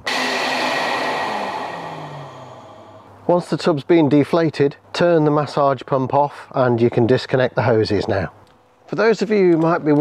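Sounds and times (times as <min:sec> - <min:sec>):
air blower rushing: 0:00.0 - 0:03.2
low hum: 0:00.0 - 0:03.2.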